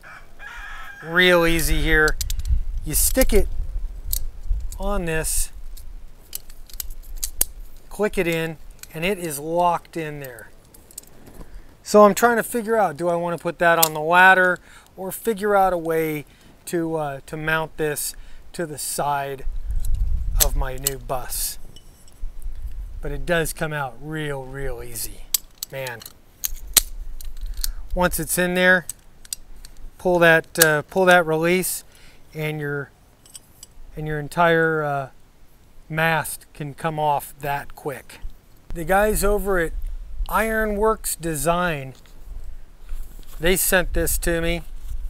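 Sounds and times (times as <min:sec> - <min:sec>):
metal clicks and scrapes: 0:04.1 - 0:09.1, 0:24.9 - 0:27.9, 0:33.2 - 0:33.8.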